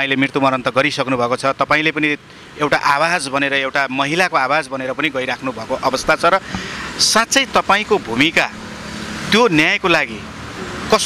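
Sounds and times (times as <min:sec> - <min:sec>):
man talking: 0:00.0 - 0:08.6, 0:09.3 - 0:10.3
motorbikes and cars passing: 0:00.0 - 0:11.0
road traffic noise: 0:00.0 - 0:11.0.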